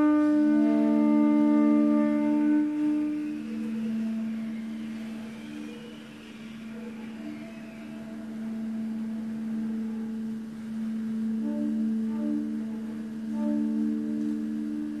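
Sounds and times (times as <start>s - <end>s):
soft broken saxophone notes: 0.0s - 5.8s, 8.3s - 15.0s
saxophone holding low note: 0.0s - 15.0s.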